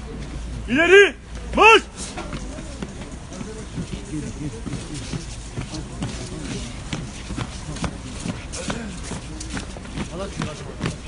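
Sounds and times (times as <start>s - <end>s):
crowd footsteps shuffling: 0.0s - 11.0s
low murmur of voices: 0.0s - 11.0s.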